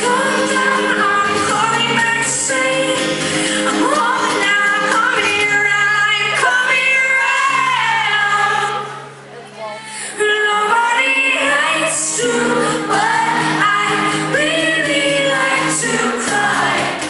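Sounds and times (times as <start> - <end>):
woman singing: 0.0 - 9.1, 10.1 - 17.0
acoustic guitar: 0.0 - 17.0.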